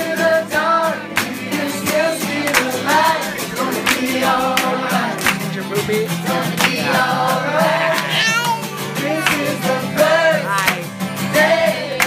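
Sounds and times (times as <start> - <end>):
guitar: 0.0 - 12.0
people singing together: 0.0 - 12.0
toddler squealing with laughter: 8.0 - 8.8.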